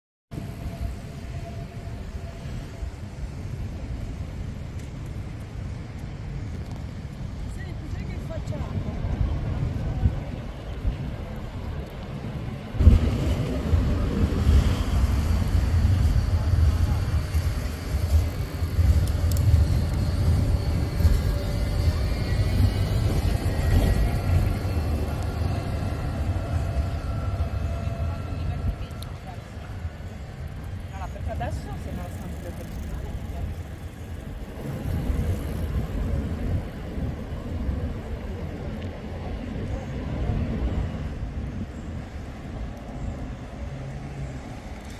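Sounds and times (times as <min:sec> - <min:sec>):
city traffic rumble: 0:00.3 - 0:44.9
tram approaching: 0:00.3 - 0:44.9.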